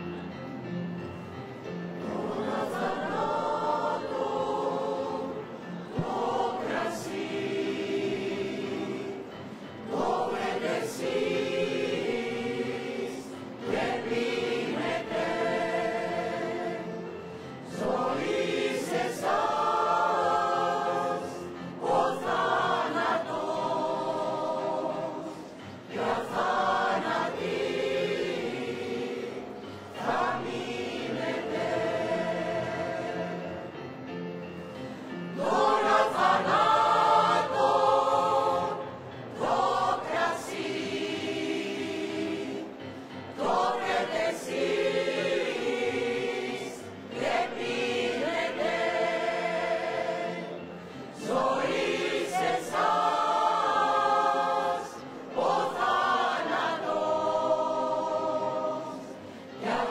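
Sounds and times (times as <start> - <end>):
women's choir singing: 1.8 - 34.0, 34.9 - 59.9.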